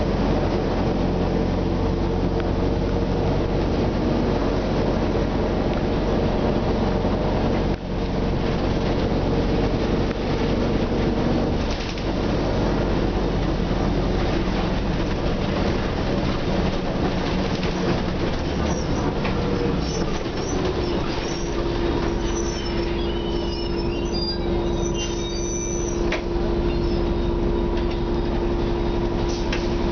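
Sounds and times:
bus engine drone from inside: 0:00.0 - 0:29.9.

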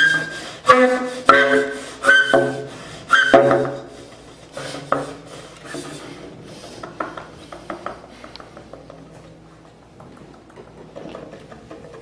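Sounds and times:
breathy tenor saxophone note: 0:00.7 - 0:02.6.

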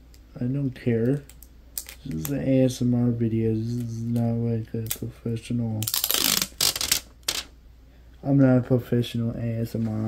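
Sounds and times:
velcro tearing apart: 0:05.8 - 0:07.5.

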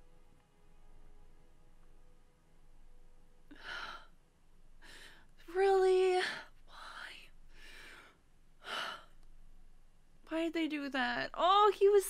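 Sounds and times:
woman breathing: 0:03.5 - 0:05.4, 0:06.2 - 0:09.3.

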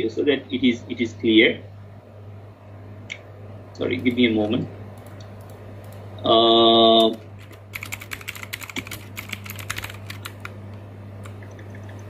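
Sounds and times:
steady low hum: 0:00.0 - 0:12.0
typing on computer keyboard: 0:07.0 - 0:10.6.

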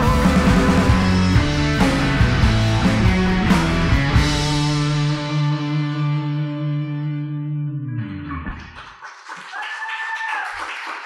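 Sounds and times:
distorted electric guitar chord: 0:00.0 - 0:08.4.

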